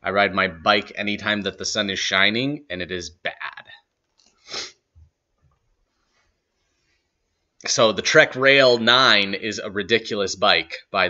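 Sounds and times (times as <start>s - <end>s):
man's short sharp breath: 4.4s - 4.7s.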